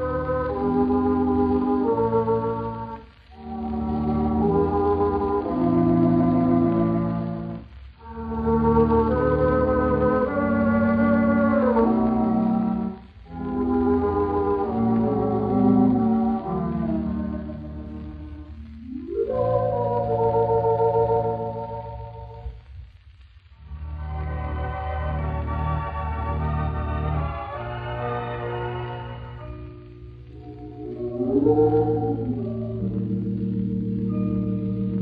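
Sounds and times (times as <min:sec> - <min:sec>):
pipe organ playing chords: 0:00.0 - 0:22.5, 0:23.6 - 0:35.0.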